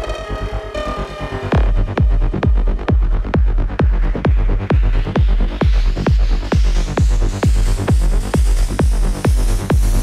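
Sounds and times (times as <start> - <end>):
tech house music: 0.0 - 10.0
heavy kick drum: 1.5 - 10.0.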